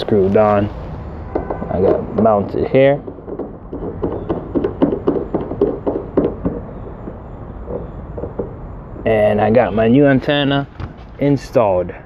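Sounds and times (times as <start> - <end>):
fingers tapping car antenna: 1.2 - 9.6.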